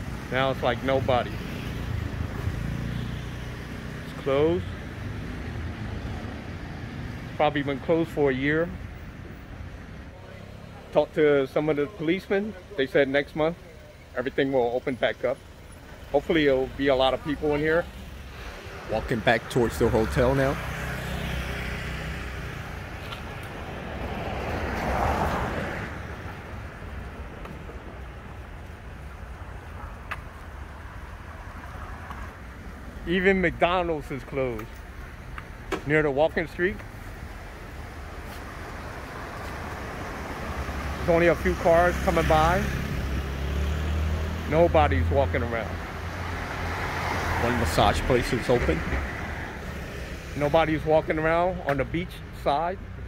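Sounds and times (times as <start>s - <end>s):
vehicle passing: 16.4s - 34.0s, 37.6s - 50.7s.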